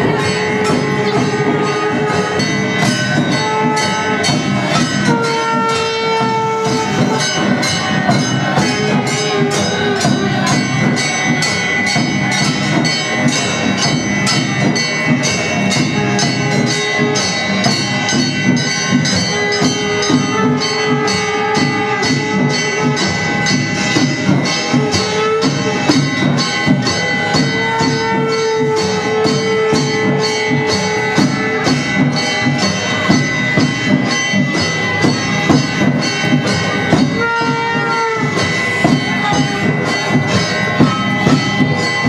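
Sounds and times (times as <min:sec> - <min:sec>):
steady drum beat: 0:00.0 - 0:42.0.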